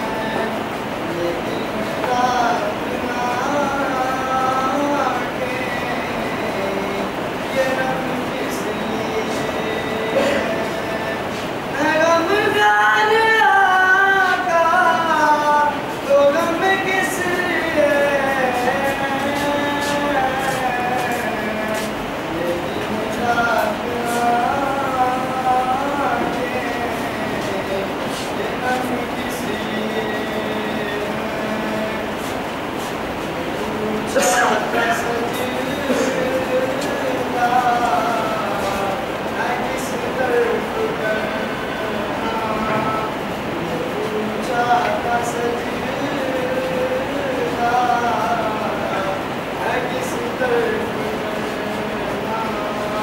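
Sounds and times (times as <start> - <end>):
person chanting over loudspeaker: 0.0 - 53.0
steady background noise: 0.0 - 53.0.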